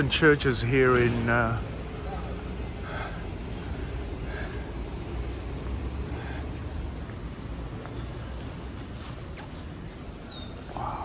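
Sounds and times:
low street rumble: 0:00.0 - 0:11.0
small bird chirping: 0:07.2 - 0:11.0.

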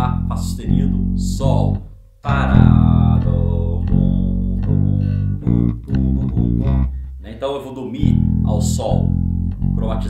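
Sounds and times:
electric bass plucked notes: 0:00.0 - 0:10.0.

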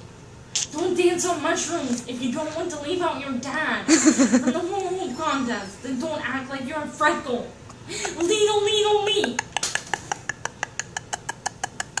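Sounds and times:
breathy unvoiced laughter: 0:09.4 - 0:12.0.

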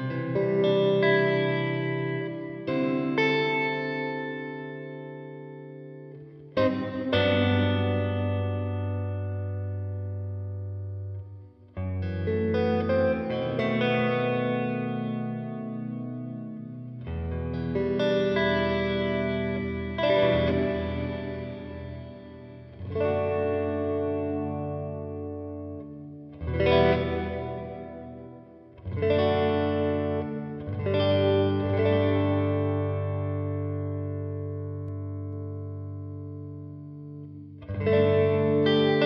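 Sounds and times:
electric guitar chords with reverb: 0:00.0 - 0:39.0.

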